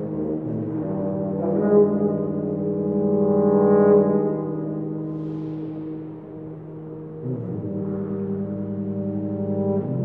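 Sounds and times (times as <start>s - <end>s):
tuba trio sustained chord: 0.0s - 10.0s.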